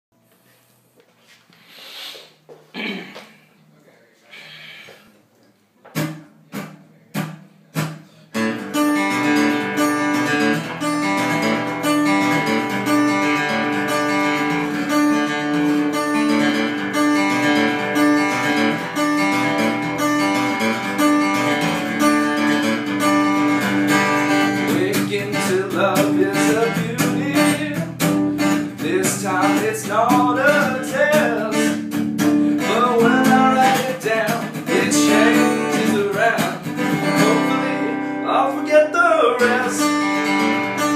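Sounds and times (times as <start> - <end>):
acoustic guitar playing: 5.8 - 40.9.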